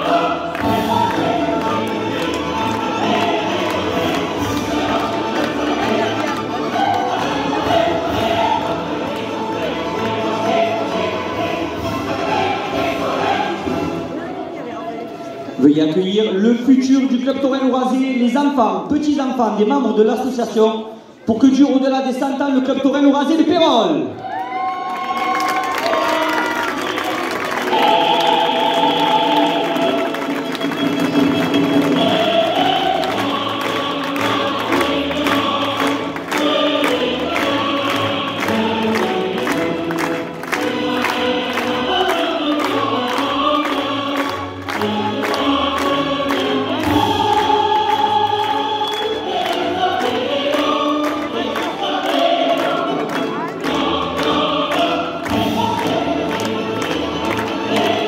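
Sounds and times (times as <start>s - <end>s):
choir singing: 0.0s - 14.5s, 25.6s - 58.0s.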